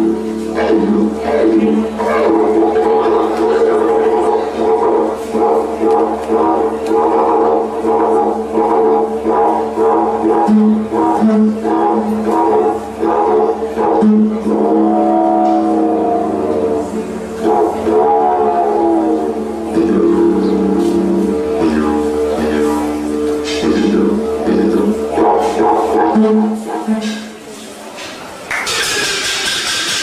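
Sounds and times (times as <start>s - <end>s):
didgeridoo drone: 0.0s - 30.0s.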